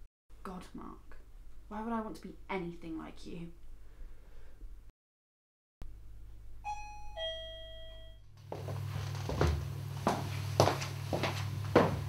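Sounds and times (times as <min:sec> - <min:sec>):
two-note doorbell chime: 0:06.6 - 0:08.3.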